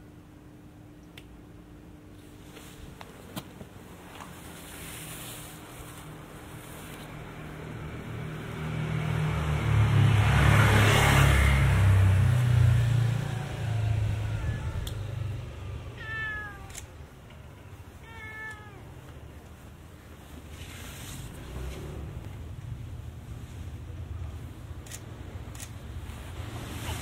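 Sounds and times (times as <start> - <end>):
vehicle passing with rumble: 4.9 - 17.9, 19.6 - 27.0
cat meowing: 13.6 - 19.1.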